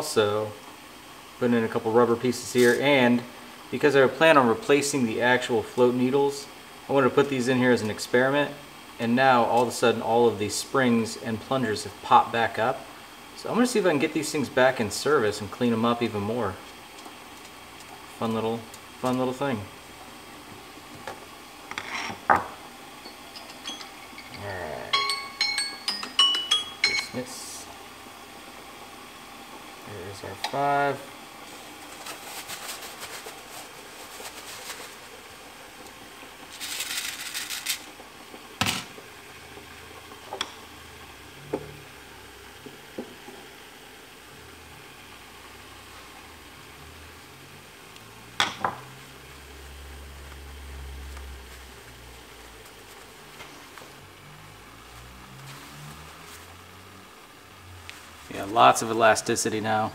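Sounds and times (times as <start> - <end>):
water boiling in a pot: 0.0 - 59.9.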